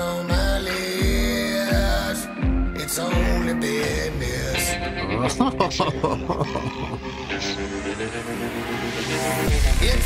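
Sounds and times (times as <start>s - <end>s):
man singing in a growling voice: 0.0s - 7.5s, 9.5s - 10.0s
backing music: 0.0s - 10.0s.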